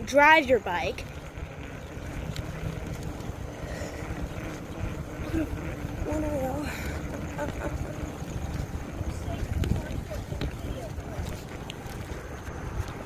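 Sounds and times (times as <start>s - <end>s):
wind noise on microphone: 1.0s - 13.0s.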